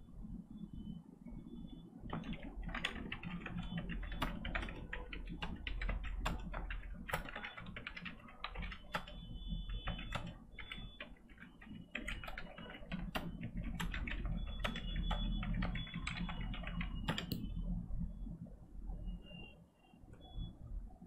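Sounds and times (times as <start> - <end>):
typing on computer keyboard: 2.1 - 17.6.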